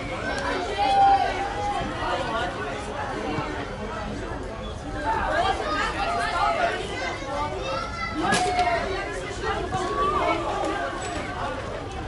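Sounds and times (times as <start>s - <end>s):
young players shouting: 0.2s - 2.2s.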